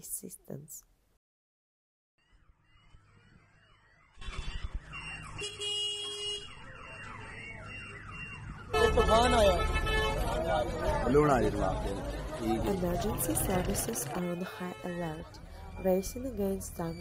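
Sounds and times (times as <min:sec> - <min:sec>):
car alarm chirping and wailing: 0:02.2 - 0:17.0.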